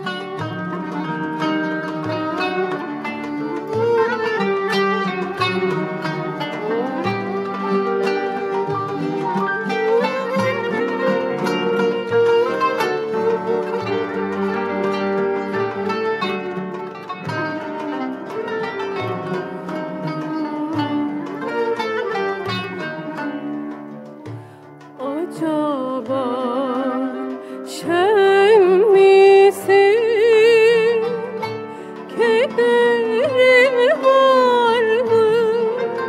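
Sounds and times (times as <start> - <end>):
instrumental ensemble playing: 0.0 - 36.0
plucked kanun melody: 0.0 - 36.0.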